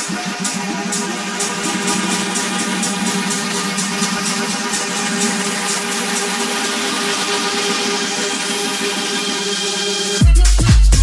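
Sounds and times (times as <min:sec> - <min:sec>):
rising high sweep: 0:00.0 - 0:10.2
sustained synth chords: 0:00.0 - 0:10.2.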